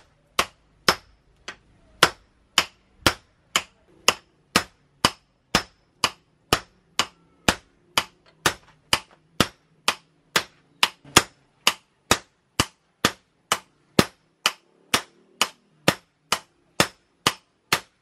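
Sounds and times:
hammer striking metal on anvil: 0:02.0 - 0:17.9.

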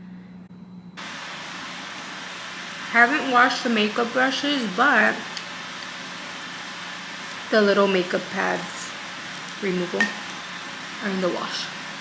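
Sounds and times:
faint steady hum: 0:00.0 - 0:12.0
steady even hiss: 0:01.0 - 0:12.0.

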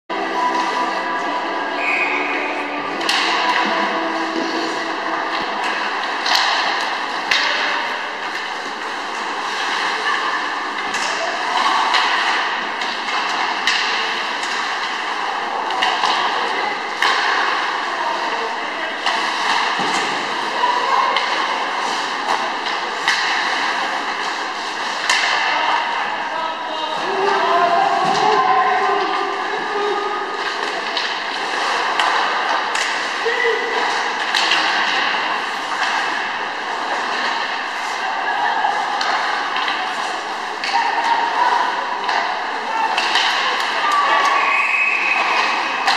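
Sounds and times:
hockey sticks and puck clacking: 0:00.1 - 0:45.9.

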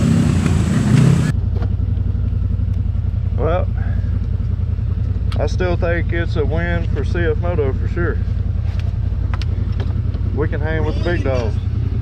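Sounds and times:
engine idling with low rumble: 0:00.0 - 0:12.0.

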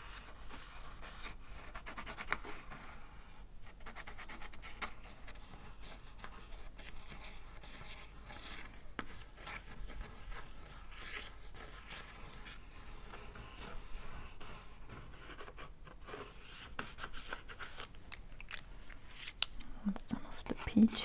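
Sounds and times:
coloured pencil scratching: 0:03.8 - 0:17.9.

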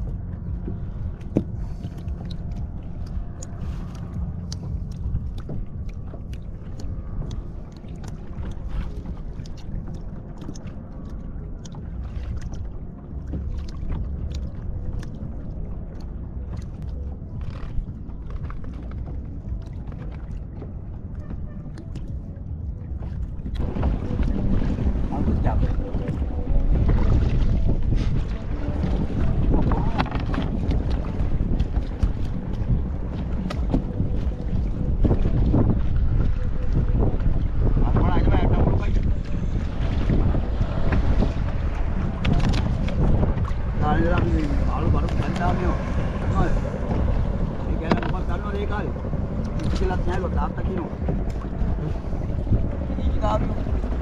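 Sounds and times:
water washing around boat: 0:00.0 - 0:54.0
wind buffeting microphone: 0:00.0 - 0:54.0.

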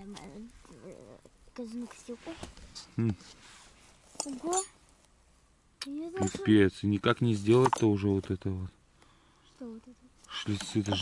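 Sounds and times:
person speaking: 0:10.3 - 0:11.0.

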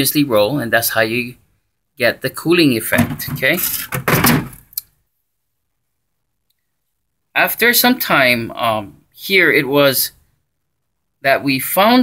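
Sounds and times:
plastic grille clunk and rattle: 0:03.0 - 0:04.6.

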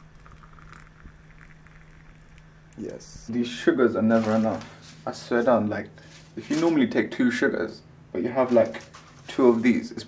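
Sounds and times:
hot water pouring into mug: 0:00.0 - 0:02.5.

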